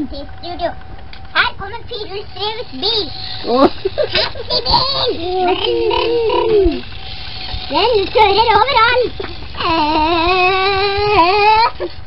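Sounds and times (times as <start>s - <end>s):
high voice imitating car engine: 1.4s - 6.8s, 7.7s - 11.9s.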